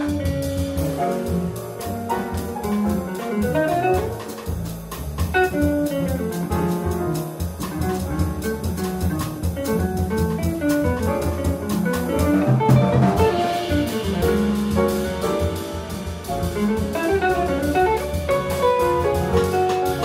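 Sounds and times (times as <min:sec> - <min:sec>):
drum kit with cymbals: 0:00.0 - 0:20.0
plucked double bass: 0:00.0 - 0:20.0.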